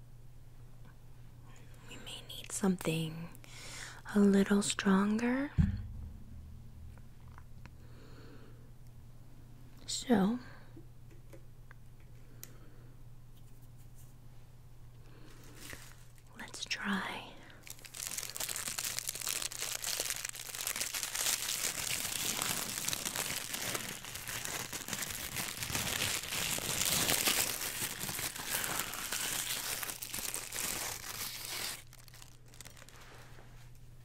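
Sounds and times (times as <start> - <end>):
wrapping crinkling and rustling: 15.2 - 16.3, 17.6 - 33.8.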